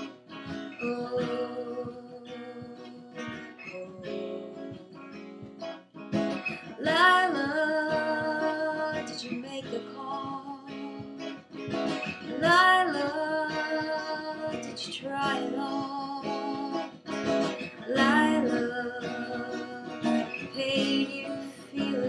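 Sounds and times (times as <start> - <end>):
strummed acoustic guitar: 0.0 - 22.0
woman singing long notes: 0.8 - 5.0, 17.8 - 22.0.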